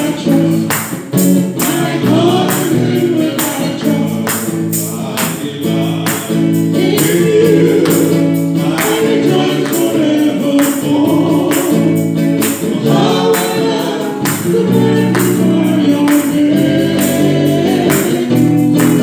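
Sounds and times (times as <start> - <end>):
electric guitar: 0.0 - 19.0
percussion beat: 0.0 - 19.0
woman singing into microphone: 12.8 - 19.0.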